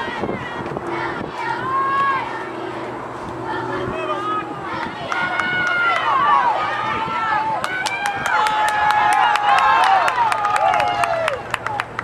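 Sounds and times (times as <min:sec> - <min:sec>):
crowd yelling and cheering: 0:00.0 - 0:12.0
people clapping: 0:04.8 - 0:06.4, 0:07.5 - 0:12.0.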